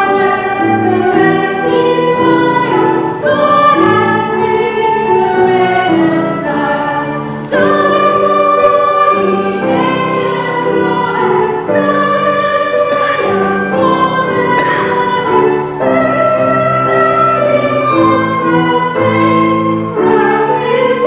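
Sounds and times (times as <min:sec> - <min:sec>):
choir singing: 0:00.0 - 0:21.0
grand piano: 0:00.0 - 0:21.0.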